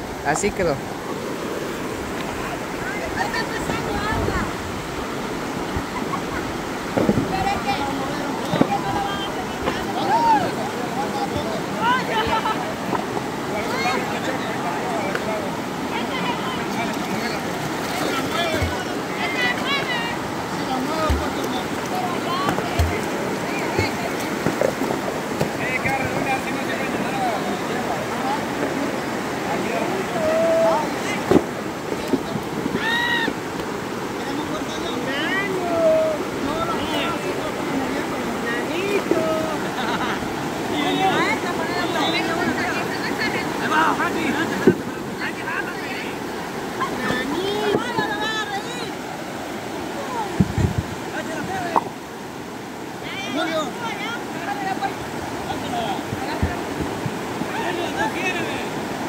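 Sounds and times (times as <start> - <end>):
water rushing over rocks: 0.0 - 59.0
people calling out: 32.7 - 33.4.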